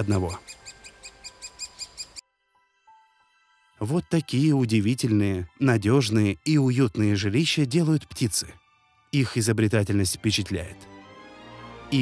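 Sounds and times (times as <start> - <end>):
high squeaky woodpecker calls: 0.0 - 2.2
soft sustained music tones: 0.0 - 12.0.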